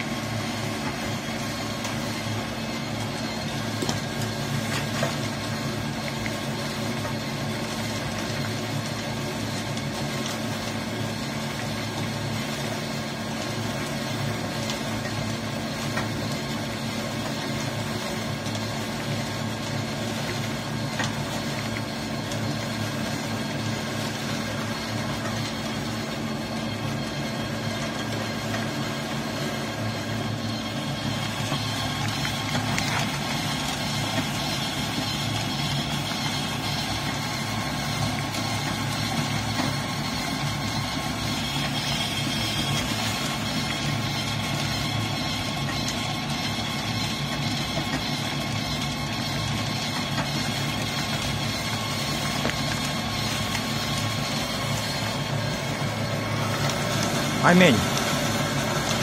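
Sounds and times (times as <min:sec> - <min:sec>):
press machine humming: 0:00.0 - 0:59.0.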